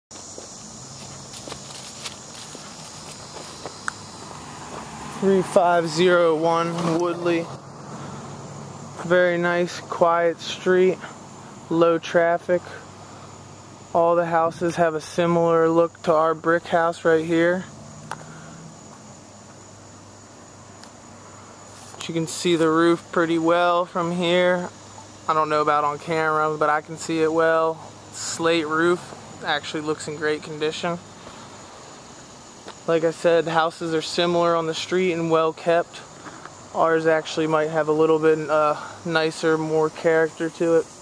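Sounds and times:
footsteps on grass: 0.1s - 5.5s, 21.6s - 22.0s
crickets droning: 0.1s - 41.0s
steady high hiss: 0.1s - 41.0s.

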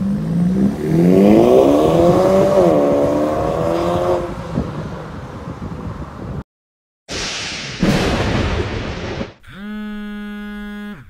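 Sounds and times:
whoosh with bang-like hit: 7.1s - 9.4s
buzzy electronic tone: 9.4s - 11.0s.

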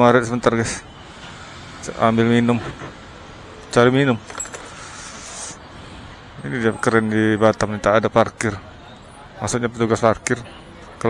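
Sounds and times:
faint street background: 0.0s - 11.0s
keys jingling: 4.2s - 4.8s.

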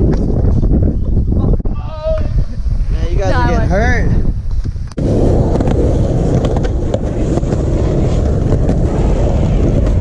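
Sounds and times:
wind buffeting microphone: 0.0s - 10.0s
skateboard rumbling on concrete: 4.4s - 10.0s.

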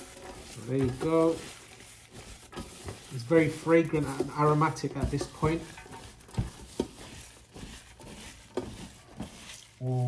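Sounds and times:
wet squelching of mixed food: 0.0s - 10.0s.

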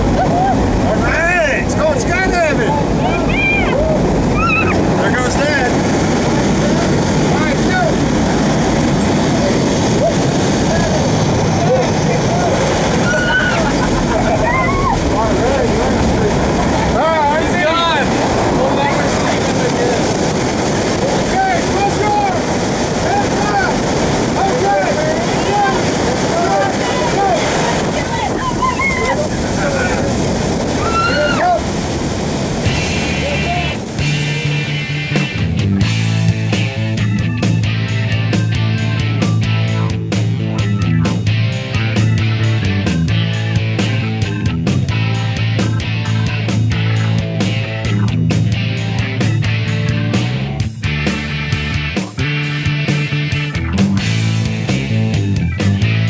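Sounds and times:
people shouting: 0.0s - 1.5s, 2.3s - 5.0s, 11.7s - 15.9s, 21.2s - 31.8s
voices calling out: 0.0s - 35.5s, 36.6s - 50.4s
airplane engine and rushing air: 0.0s - 56.0s.

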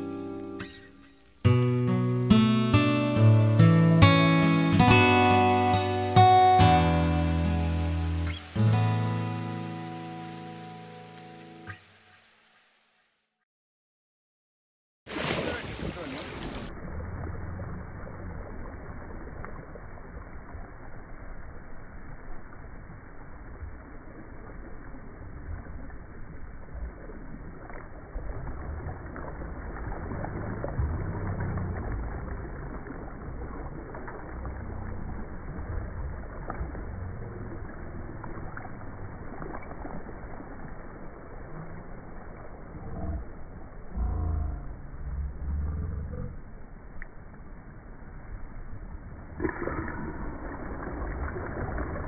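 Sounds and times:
water washing over sand: 15.1s - 44.2s, 47.0s - 52.0s
wind rumbling on microphone: 15.4s - 52.0s.

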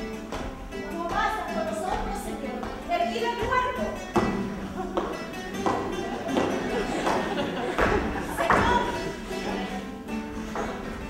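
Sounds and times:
feet stamping on wooden stage: 0.0s - 11.0s.

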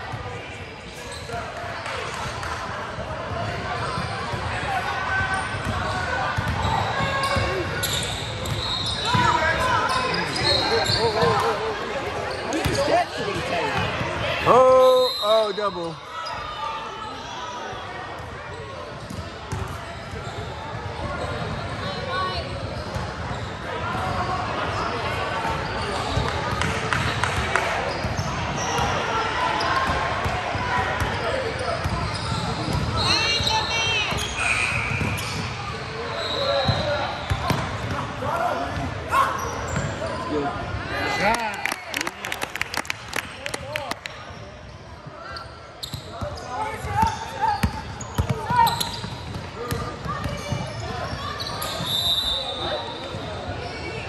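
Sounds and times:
voices of players and spectators: 0.0s - 54.0s.

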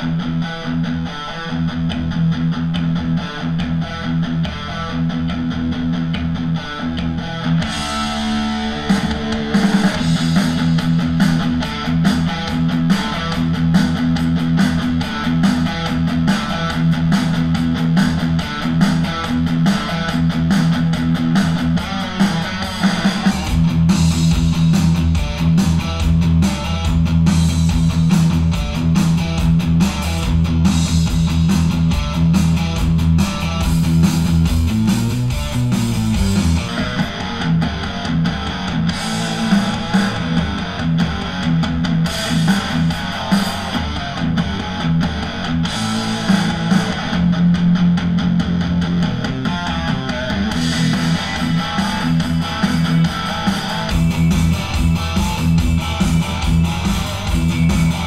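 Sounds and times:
rock music with electric guitars: 0.0s - 58.0s.

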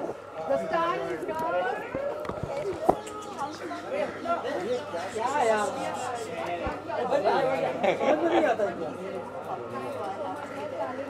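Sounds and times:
overlapping conversation: 0.5s - 11.0s.

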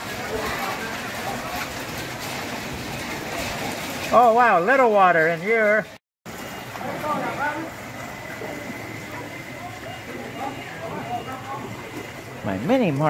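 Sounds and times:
distant people talking: 0.0s - 2.1s, 6.5s - 13.0s
outdoor background noise: 0.0s - 13.0s.

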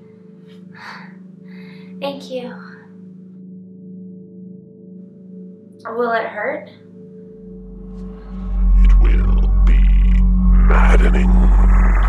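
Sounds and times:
low steady musical drone: 0.0s - 12.0s
woman gasping breaths: 0.7s - 2.0s.

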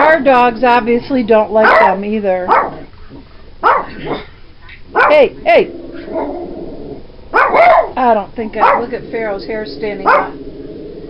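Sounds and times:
small dog barking: 1.6s - 2.9s, 3.6s - 4.2s, 4.9s - 5.3s, 7.3s - 8.0s, 8.6s - 8.9s, 10.0s - 10.4s.

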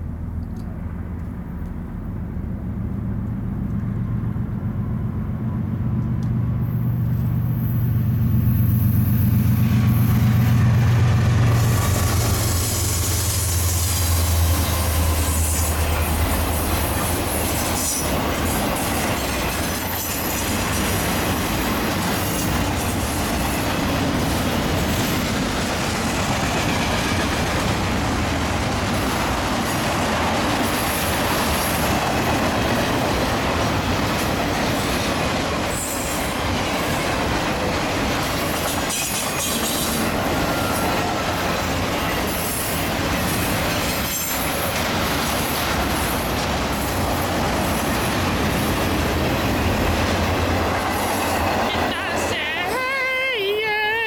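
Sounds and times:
diesel locomotive hum: 0.0s - 54.0s
train cars rolling: 0.0s - 54.0s.

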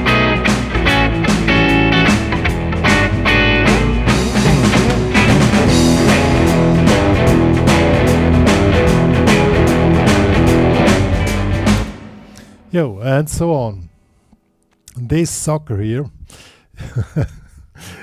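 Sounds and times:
backing track with drums: 0.0s - 12.6s
electric guitar blues riff: 0.0s - 12.7s.

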